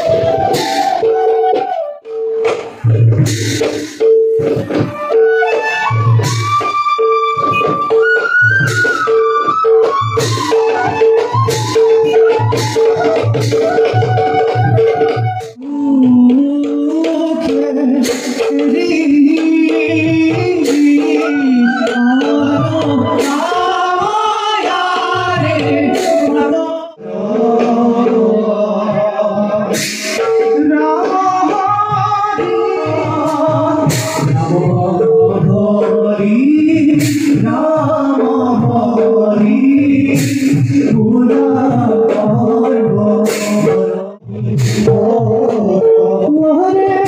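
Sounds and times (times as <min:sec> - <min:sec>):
percussion: 0:00.0 - 0:47.0
voices singing together: 0:15.9 - 0:47.0.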